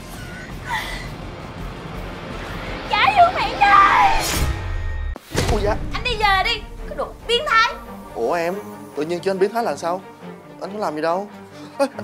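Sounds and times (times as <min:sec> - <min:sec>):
soft background music: 0:05.4 - 0:12.0.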